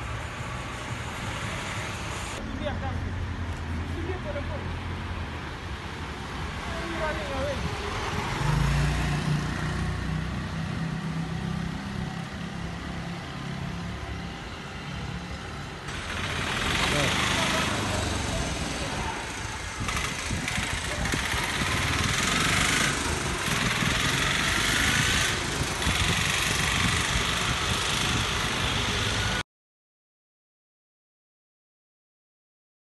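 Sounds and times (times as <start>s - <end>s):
vehicle engine humming: 0.0s - 29.4s
wind and road rushing noise: 0.0s - 29.4s.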